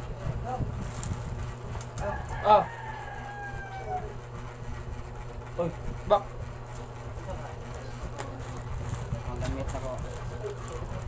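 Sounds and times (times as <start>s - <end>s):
rooster crowing: 2.0s - 4.2s.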